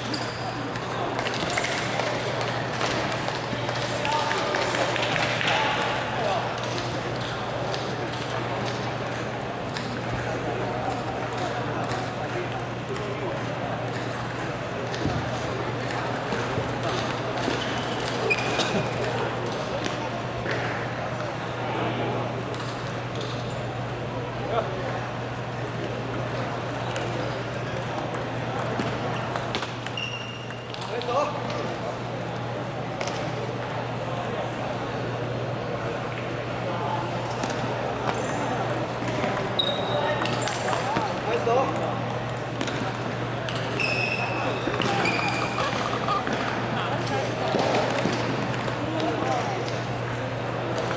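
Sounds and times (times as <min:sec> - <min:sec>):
murmur of voices: 0:00.0 - 0:50.9
distant voices: 0:31.4 - 0:50.9
table tennis balls clicking: 0:41.6 - 0:49.2.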